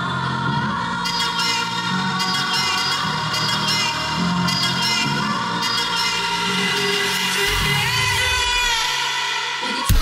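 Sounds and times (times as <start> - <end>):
electronic dance music: 0.7 - 10.0.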